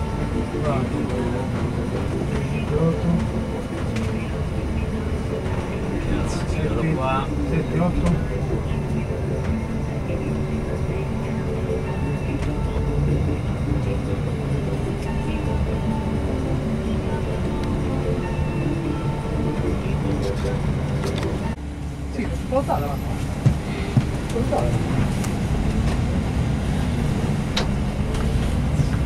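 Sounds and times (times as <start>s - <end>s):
bus engine and road rumble: 0.0s - 29.0s
indistinct voices: 0.0s - 29.0s.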